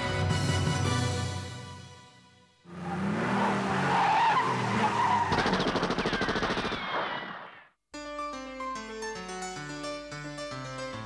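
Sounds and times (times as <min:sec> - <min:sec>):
cartoon rushing skidding noise: 0:02.7 - 0:07.7
rapid rattle with falling whistles: 0:04.9 - 0:07.6.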